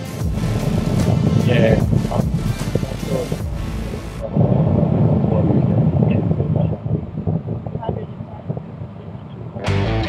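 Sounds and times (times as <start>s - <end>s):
background music: 0.0s - 4.3s, 9.6s - 10.0s
loud low rumble: 0.2s - 10.0s.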